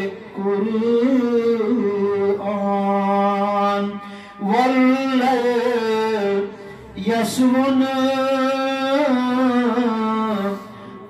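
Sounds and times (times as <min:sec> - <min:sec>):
man chanting: 0:00.0 - 0:11.0
breath: 0:04.0 - 0:04.4, 0:06.5 - 0:07.0, 0:10.5 - 0:11.0.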